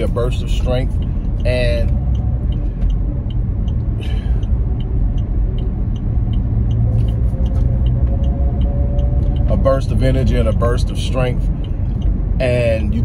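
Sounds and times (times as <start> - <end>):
engine and road rumble: 0.0 - 13.0
turn signal ticking: 0.0 - 13.0.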